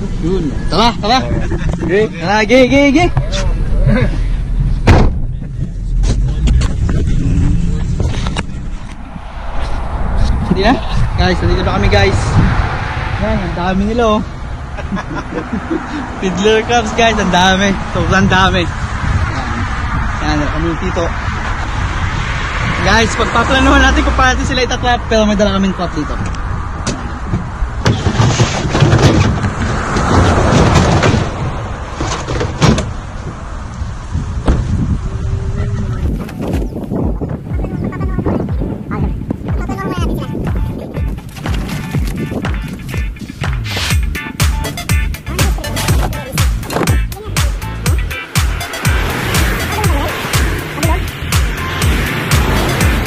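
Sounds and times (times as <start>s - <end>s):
wind buffeting microphone: 0.0s - 14.9s, 15.9s - 44.9s
engine and road rumble: 0.0s - 53.0s
knocks and rattles: 26.8s - 33.0s.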